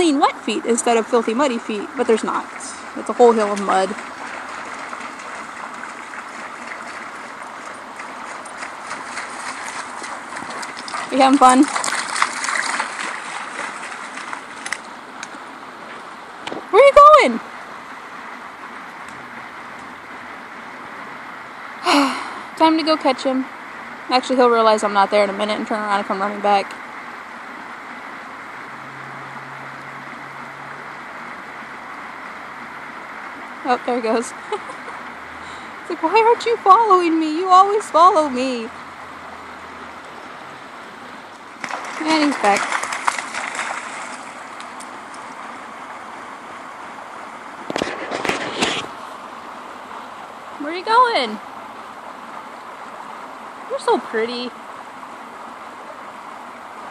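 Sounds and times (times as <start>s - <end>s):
running water rushing: 0.0s - 56.9s
dog splashing through water: 2.2s - 14.9s, 41.4s - 45.6s.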